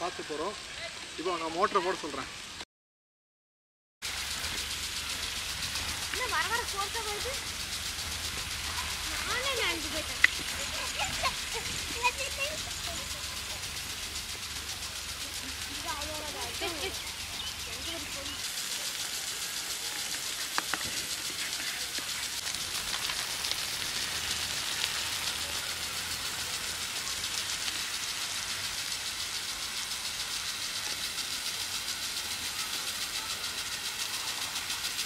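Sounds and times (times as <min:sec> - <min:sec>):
sprinkler water spraying: 0:00.0 - 0:02.6, 0:04.0 - 0:35.0.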